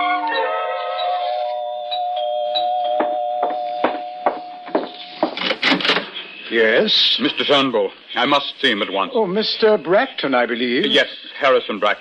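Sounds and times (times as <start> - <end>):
knocking on a door: 3.0 - 5.4.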